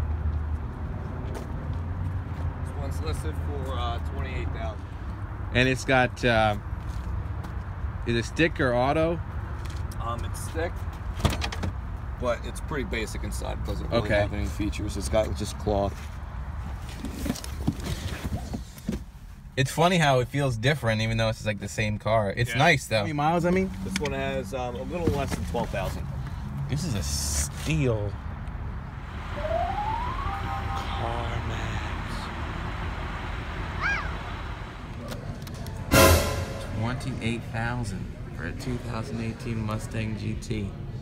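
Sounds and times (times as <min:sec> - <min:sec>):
knocks and rustles in car: 0:16.9 - 0:19.1
steady low rumble: 0:28.9 - 0:38.6
rising tone: 0:29.0 - 0:35.0.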